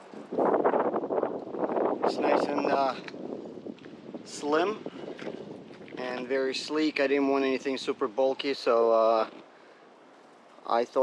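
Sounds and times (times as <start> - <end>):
wind buffeting microphone: 0.0 - 9.5.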